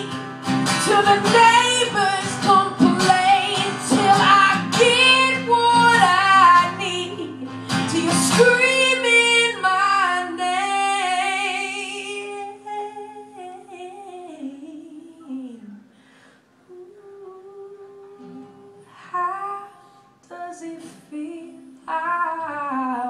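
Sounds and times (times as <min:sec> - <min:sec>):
guitar accompaniment: 0:00.0 - 0:13.6, 0:18.0 - 0:23.0
woman singing: 0:00.0 - 0:15.9, 0:16.7 - 0:23.0.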